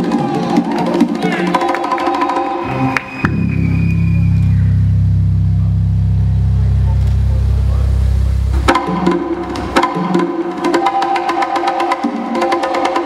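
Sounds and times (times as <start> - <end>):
music: 0.0 - 13.0
percussion hits: 0.0 - 13.0
deep bass drone: 2.7 - 10.5.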